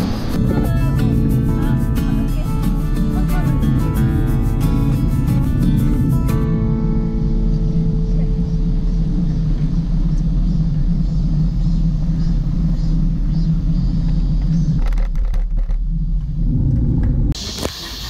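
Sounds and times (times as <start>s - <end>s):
wind buffeting microphone: 0.0s - 17.4s
hiss: 17.4s - 18.0s.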